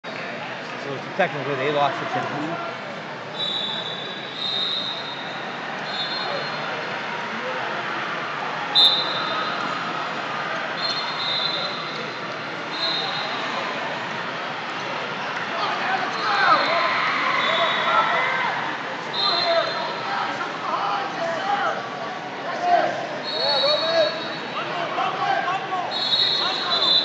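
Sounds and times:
hubbub of distant voices: 0:00.0 - 0:27.0
referees' whistle blasts: 0:03.3 - 0:06.7, 0:08.7 - 0:09.7, 0:10.8 - 0:12.0, 0:12.7 - 0:13.4, 0:16.1 - 0:18.2, 0:19.1 - 0:19.9, 0:23.2 - 0:24.6, 0:25.9 - 0:27.0.

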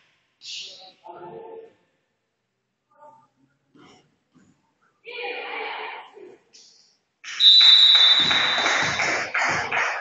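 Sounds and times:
referee's whistle blast: 0:07.4 - 0:09.1
thuds: 0:08.2 - 0:09.7.

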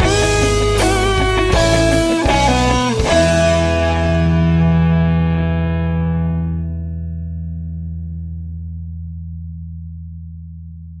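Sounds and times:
low guitar note ringing: 0:00.0 - 0:09.4.

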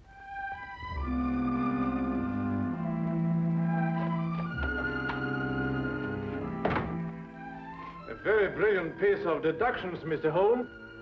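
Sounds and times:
orchestral music sustained chords: 0:00.0 - 0:11.0
sharp thunk: 0:06.6 - 0:07.1.

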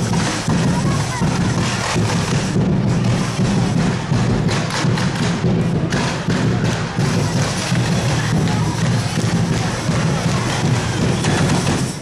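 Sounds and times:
marching crowd: 0:00.0 - 0:12.0.

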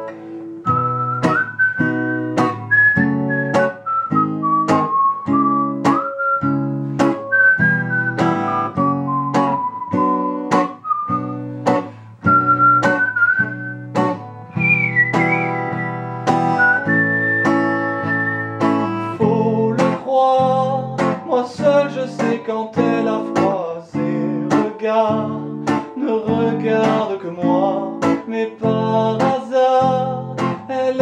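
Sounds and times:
whistled melody: 0:00.0 - 0:20.0
acoustic guitar strumming: 0:00.0 - 0:31.0.

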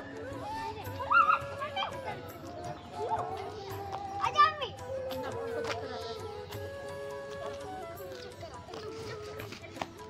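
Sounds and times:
children's voices at play: 0:00.0 - 0:09.9
child's high-pitched shout: 0:00.4 - 0:02.3, 0:04.2 - 0:04.9.

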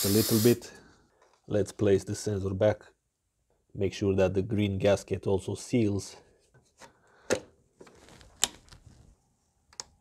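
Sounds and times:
faint handling noise: 0:06.4 - 0:09.8.

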